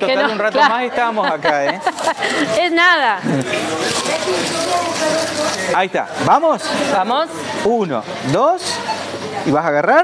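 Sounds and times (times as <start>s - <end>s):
faint background voices: 0.0s - 9.7s
paper coupons rustling in box: 3.6s - 6.8s.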